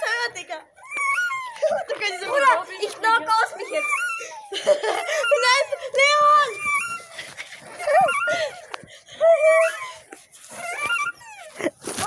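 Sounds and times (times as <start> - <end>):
boys laughing and squealing: 0.0 - 12.0.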